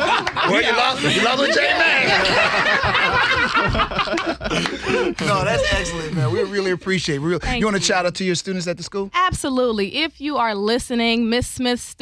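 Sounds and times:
people laughing: 0:00.0 - 0:07.0.

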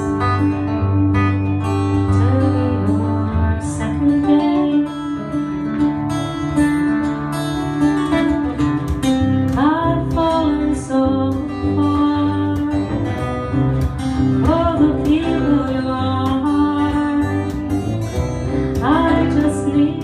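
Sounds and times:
acoustic guitars picking and strumming: 0:00.0 - 0:20.0
woman singing folk song: 0:00.0 - 0:20.0.

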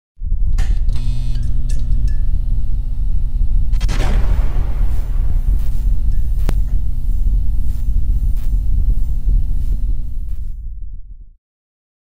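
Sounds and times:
deep rumbling drone: 0:00.2 - 0:11.3
sharp cinematic hits: 0:03.8 - 0:07.6
cinematic burst: 0:03.8 - 0:09.2.

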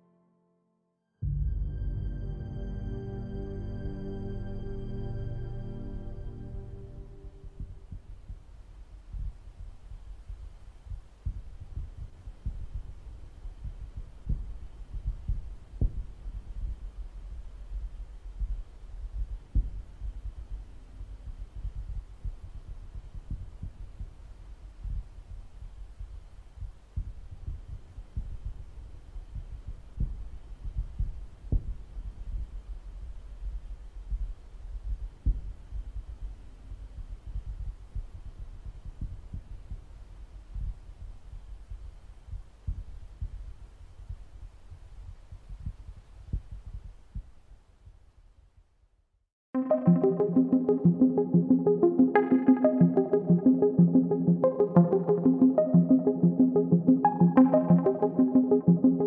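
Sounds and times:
low rumbling drone with throbbing pulses: 0:01.2 - 0:07.8.

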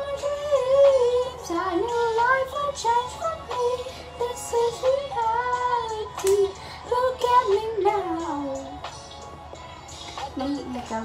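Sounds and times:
woman singing wordless melody: 0:00.0 - 0:08.9, 0:10.2 - 0:11.0.

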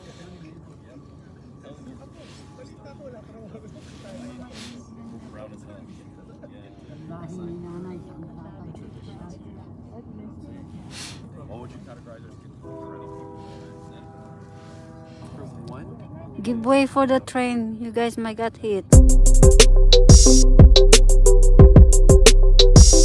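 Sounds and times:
murmur of voices: 0:00.0 - 0:17.4
train horn: 0:12.6 - 0:15.8.

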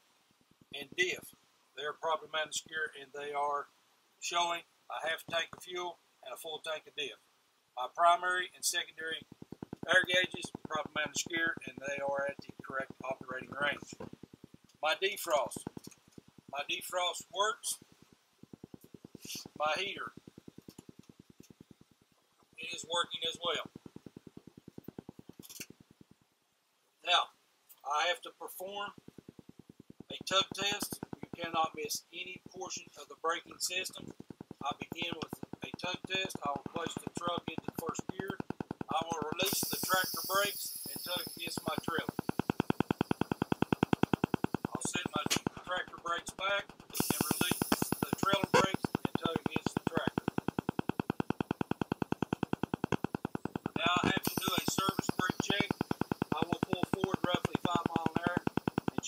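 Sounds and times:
heater blower fan pulsing: 0:28.6 - 0:59.0.

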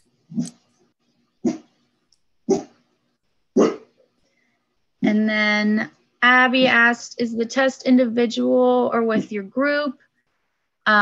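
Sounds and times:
dog barking: 0:02.5 - 0:02.8, 0:03.6 - 0:03.9.

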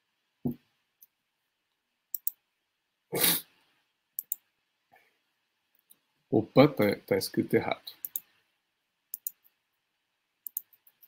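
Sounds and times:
faint clicks: 0:04.2 - 0:04.4.

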